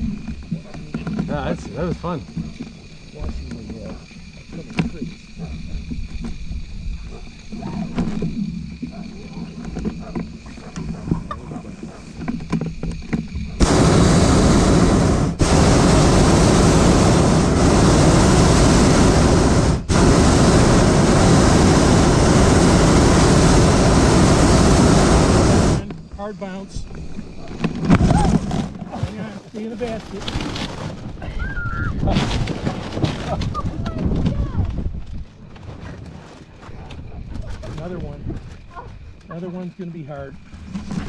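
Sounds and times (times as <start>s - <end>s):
propane burner roaring: 0.0s - 6.4s, 7.0s - 28.6s.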